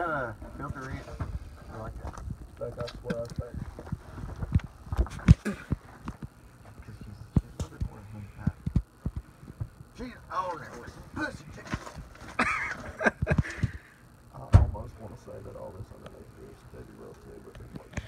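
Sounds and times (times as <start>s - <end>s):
muffled talking: 0.0s - 3.8s, 6.6s - 8.8s, 14.3s - 18.0s.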